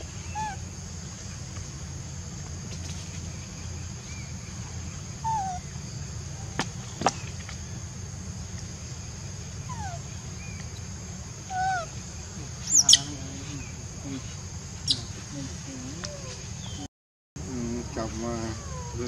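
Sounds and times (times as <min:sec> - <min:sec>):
baby monkey cries: 0:00.0 - 0:00.7, 0:05.2 - 0:05.7, 0:09.6 - 0:10.5, 0:11.4 - 0:12.0, 0:12.6 - 0:13.8, 0:17.7 - 0:19.0
outdoor hiss: 0:00.0 - 0:19.0.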